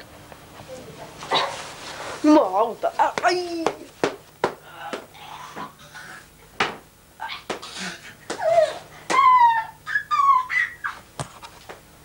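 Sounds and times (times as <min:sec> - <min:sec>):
high-pitched whining cries: 0:08.4 - 0:11.0.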